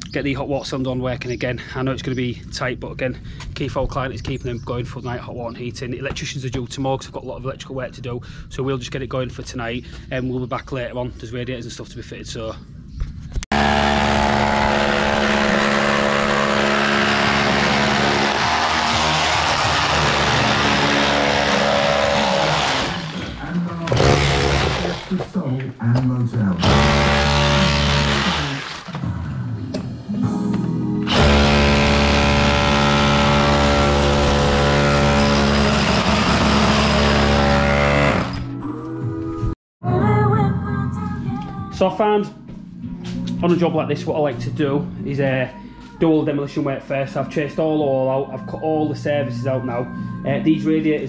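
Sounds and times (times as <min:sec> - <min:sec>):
hammer drill chiselling wall: 0:13.5 - 0:25.2, 0:26.6 - 0:29.0, 0:31.1 - 0:38.5.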